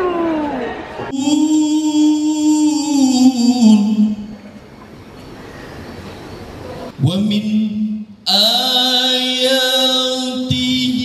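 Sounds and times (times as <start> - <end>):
man chanting amplified: 1.1 - 4.6, 6.9 - 11.0.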